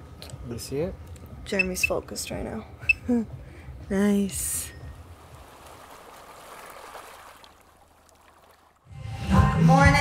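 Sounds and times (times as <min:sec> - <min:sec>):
water rushing: 0:05.0 - 0:08.9.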